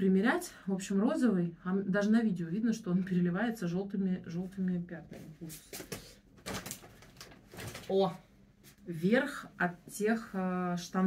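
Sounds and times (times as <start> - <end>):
clothing rustling: 5.1 - 9.0.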